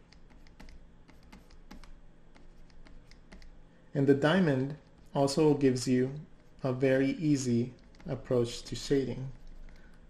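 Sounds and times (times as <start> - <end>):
stylus tapping on screen: 0.1 - 3.6.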